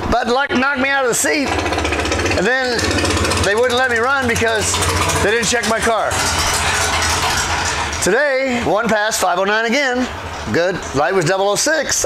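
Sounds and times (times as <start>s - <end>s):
low machine hum: 0.6s - 8.7s.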